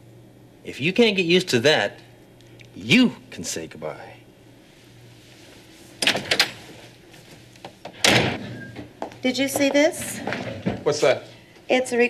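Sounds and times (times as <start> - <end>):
door slamming shut: 7.9 - 8.9.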